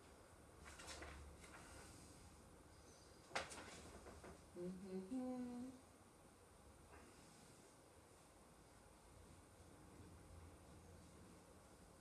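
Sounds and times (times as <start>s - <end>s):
woman humming: 4.6s - 5.8s.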